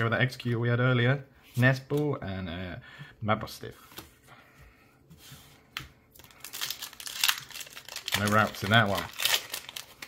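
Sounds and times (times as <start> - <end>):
foil wrapper crinkling: 6.2 - 10.0.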